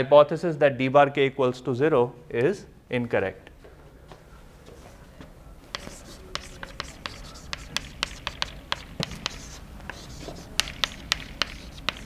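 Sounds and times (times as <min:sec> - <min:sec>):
chalk tapping and scratching: 0:05.7 - 0:12.0.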